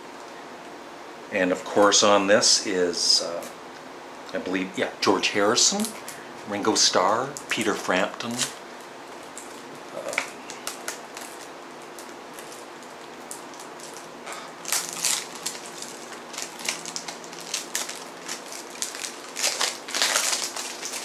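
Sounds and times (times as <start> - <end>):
plastic and paper crinkling: 9.2 - 21.0.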